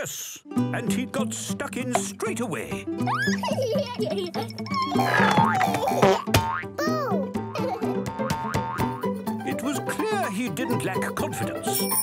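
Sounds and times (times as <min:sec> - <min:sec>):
bouncy cartoon music: 0:00.4 - 0:12.0
springy boing sound effect: 0:05.0 - 0:06.9, 0:08.0 - 0:09.1.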